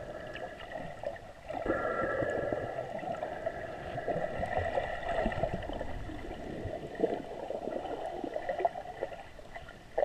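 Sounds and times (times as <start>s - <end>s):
water gurgling underwater: 0.0s - 10.0s.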